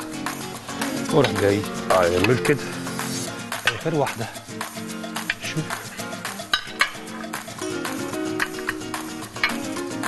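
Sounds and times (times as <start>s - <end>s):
background music sustained tones: 0.0s - 10.0s
metal utensils clinking on plate: 5.2s - 9.8s.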